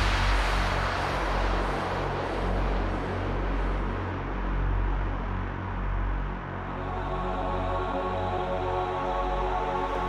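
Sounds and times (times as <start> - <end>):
white-noise sweep: 0.0 - 4.4.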